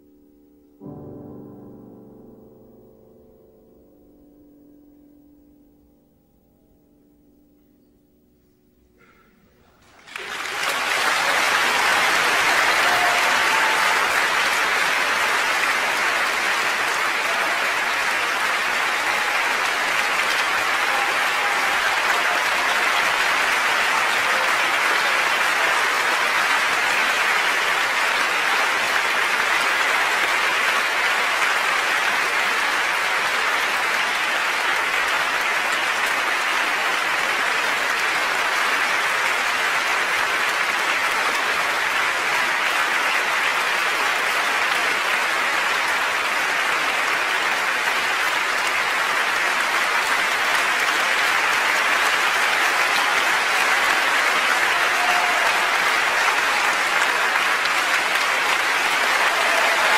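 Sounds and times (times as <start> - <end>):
audience applauding: 9.8 - 59.9.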